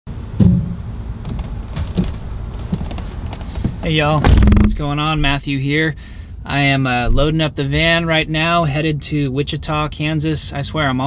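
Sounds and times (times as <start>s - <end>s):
low steady rumble: 0.1s - 11.0s
knocks and rustles: 0.4s - 5.1s
heavy thump: 0.4s - 5.4s, 7.1s - 7.4s.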